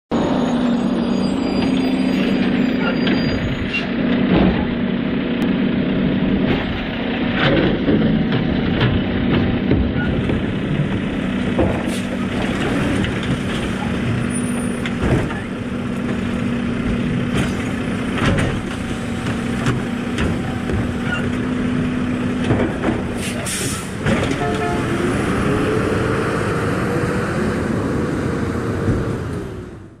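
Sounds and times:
garbage truck engine running: 0:00.1 - 0:29.9
air brakes hissing: 0:11.8 - 0:12.2, 0:23.2 - 0:24.0.

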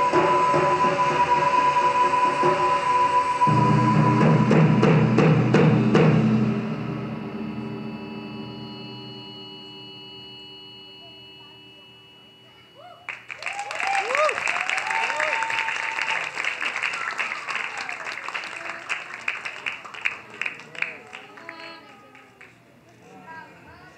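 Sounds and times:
taiko drums: 0:03.5 - 0:08.2
cheers and whoops: 0:12.8 - 0:18.7
audience applause: 0:13.1 - 0:22.6.

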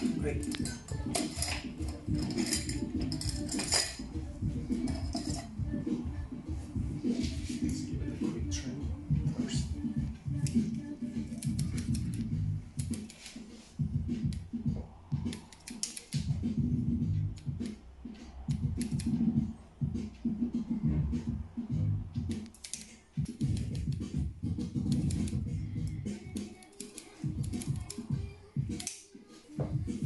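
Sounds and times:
metal and glass clinking: 0:00.0 - 0:04.2, 0:04.8 - 0:05.6
scissors snipping: 0:10.4 - 0:13.5, 0:15.2 - 0:16.4, 0:17.4 - 0:17.8, 0:18.5 - 0:19.2, 0:22.2 - 0:24.1, 0:24.8 - 0:25.5, 0:26.1 - 0:29.1.

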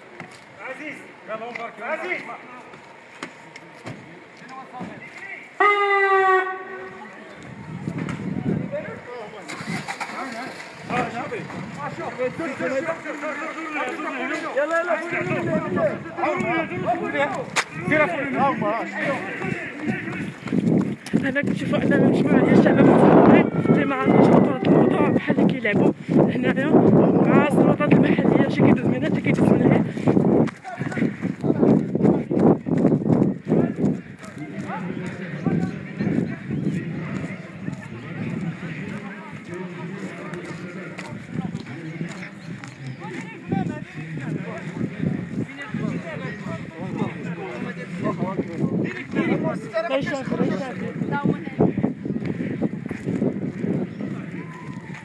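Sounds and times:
men's raised voices: 0:00.6 - 0:55.0
running footfalls on dirt path: 0:13.8 - 0:55.0
hard breathing: 0:25.9 - 0:26.3, 0:29.8 - 0:31.4.

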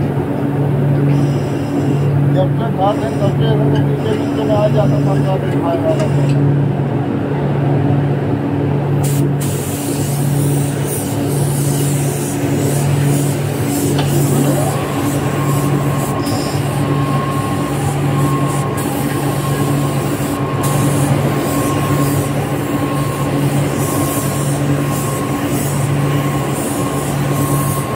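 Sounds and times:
pulsing factory machine hum: 0:00.0 - 0:27.9
spray gun hissing: 0:09.0 - 0:27.9.

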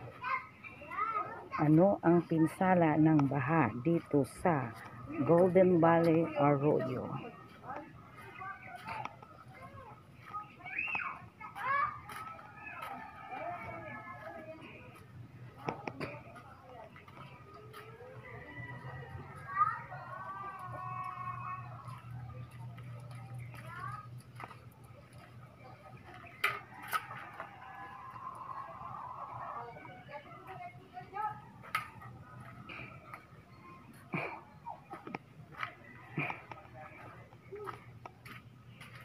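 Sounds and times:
people talking in background: 0:02.6 - 0:39.0.

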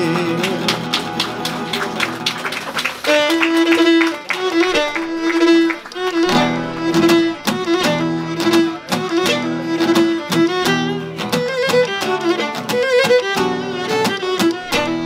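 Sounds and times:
strummed lute and guitar: 0:00.0 - 0:02.3, 0:03.1 - 0:15.0
bowed lyra melody: 0:03.6 - 0:15.0.

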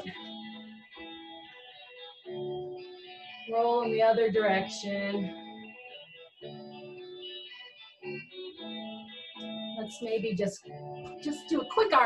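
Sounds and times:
sustained keyboard chords: 0:00.0 - 0:12.0.

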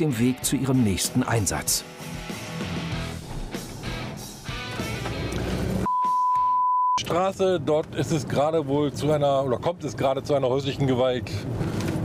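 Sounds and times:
rock music with guitar: 0:01.8 - 0:05.9
censor bleep: 0:05.9 - 0:07.0.

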